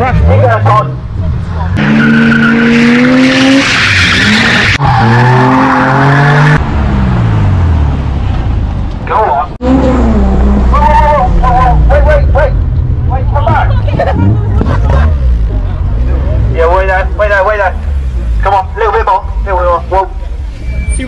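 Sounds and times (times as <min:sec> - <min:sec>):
car engines rumbling: 0:00.0 - 0:21.0
crowd talking and shouting: 0:13.0 - 0:21.0.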